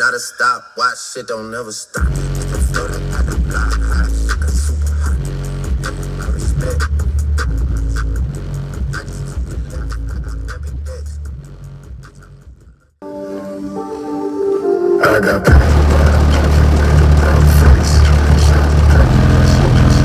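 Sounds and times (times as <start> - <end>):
bass-heavy music through subwoofers: 2.0 - 13.0, 15.0 - 20.0.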